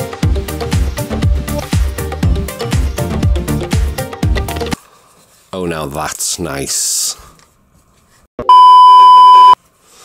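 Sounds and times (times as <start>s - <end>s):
censor bleep tone: 8.4s - 9.6s.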